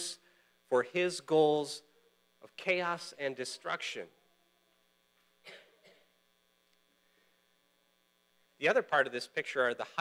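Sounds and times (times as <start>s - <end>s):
faint electrical hum: 0.0s - 10.0s
man clearing throat: 5.4s - 6.2s.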